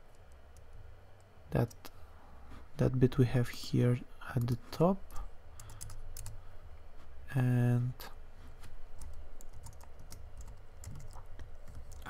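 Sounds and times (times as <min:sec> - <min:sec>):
computer keyboard typing: 0:05.6 - 0:06.4, 0:09.0 - 0:12.0.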